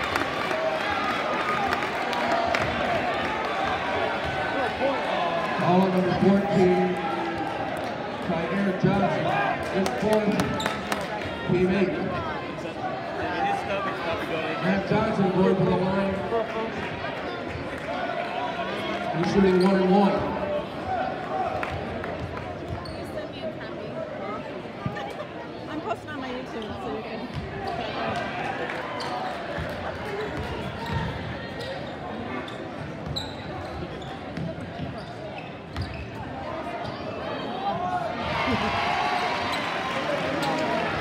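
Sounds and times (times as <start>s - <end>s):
crowd chatter: 0.0s - 41.0s.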